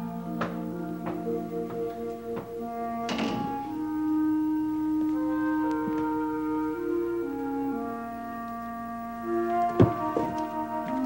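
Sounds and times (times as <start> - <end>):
sustained orchestral score: 0.0 - 11.0
door shutting: 3.0 - 3.8, 9.4 - 11.0.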